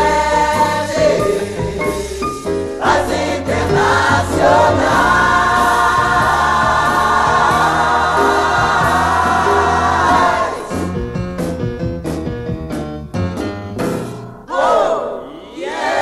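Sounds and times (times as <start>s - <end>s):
group of voices singing: 0.0s - 10.9s, 14.4s - 16.0s
musical accompaniment: 0.0s - 16.0s.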